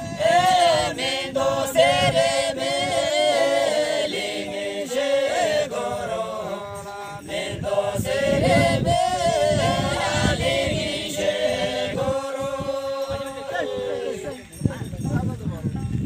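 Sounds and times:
group singing without instruments: 0.0s - 14.5s.

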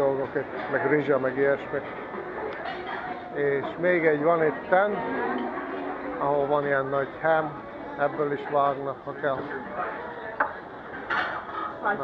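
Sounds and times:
murmur of voices: 0.0s - 12.0s
plates and utensils clinking: 2.6s - 3.8s, 5.0s - 6.1s, 10.4s - 12.0s.

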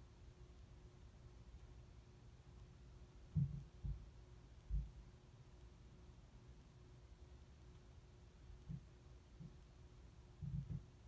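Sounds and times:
faint steady hum: 0.0s - 11.0s
muffled dull thumps: 3.3s - 4.1s, 10.4s - 10.9s.

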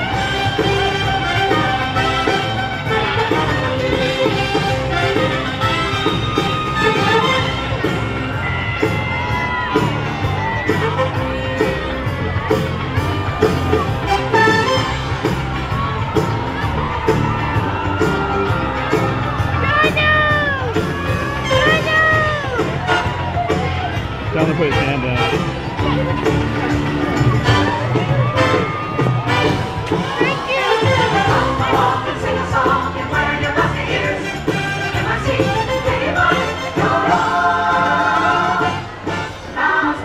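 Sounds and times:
crowd whooping and cheering: 0.0s - 40.0s
upbeat parade music: 0.0s - 40.0s.

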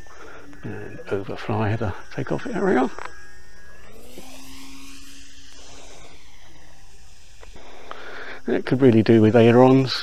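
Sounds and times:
model plane motor whine: 0.0s - 10.0s.

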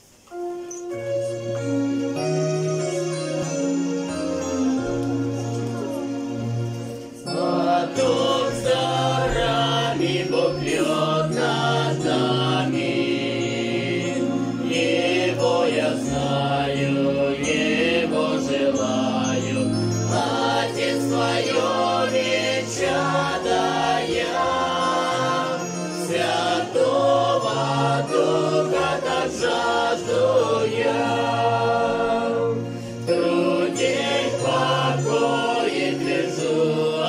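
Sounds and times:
group singing a hymn: 7.2s - 37.0s.

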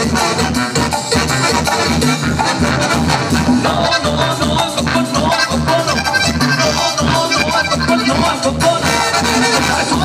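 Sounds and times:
brass band playing: 0.0s - 10.0s.

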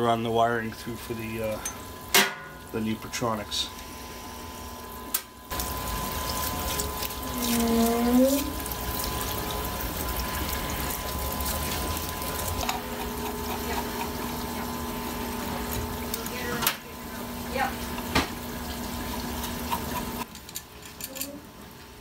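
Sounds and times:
pump humming: 0.0s - 20.6s
liquid splashing: 5.5s - 20.2s.

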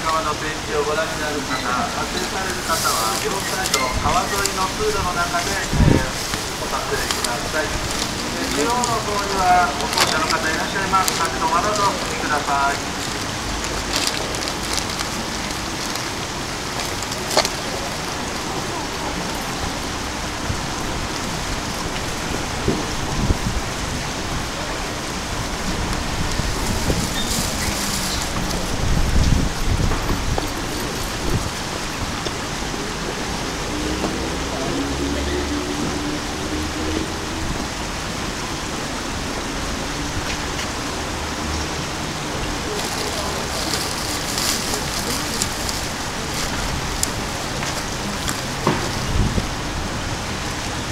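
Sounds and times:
water rushing over weir: 0.0s - 50.9s.

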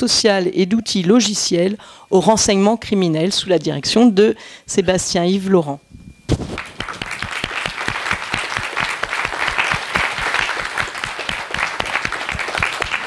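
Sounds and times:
audience applause: 6.6s - 13.0s.

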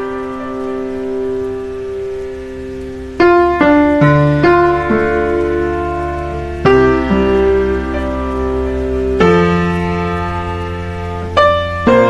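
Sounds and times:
held piano chord: 0.0s - 12.0s.

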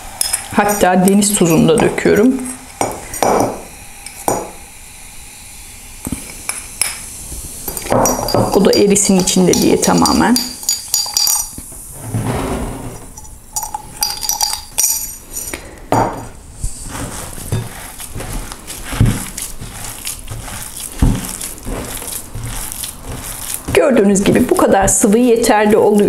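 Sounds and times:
glass clinking: 7.7s - 11.6s, 13.1s - 16.3s
hands kneading dough: 15.2s - 26.0s.

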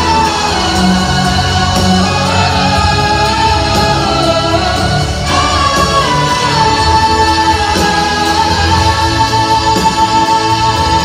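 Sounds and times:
live pop ballad: 0.0s - 11.0s.

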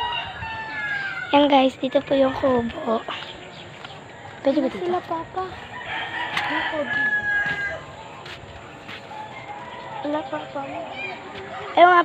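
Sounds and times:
rooster crowing: 0.0s - 1.4s, 4.8s - 8.0s, 9.1s - 10.6s.

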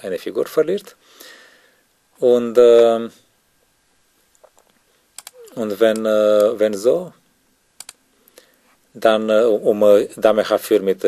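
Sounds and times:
computer input clicks: 5.2s - 6.5s, 7.8s - 8.0s.

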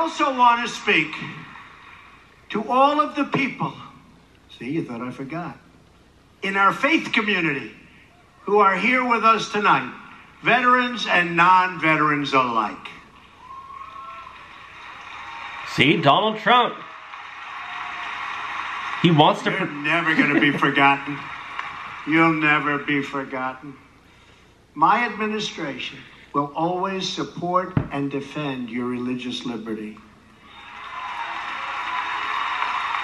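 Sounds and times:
crowd applauding: 13.4s - 23.0s, 30.5s - 33.0s.

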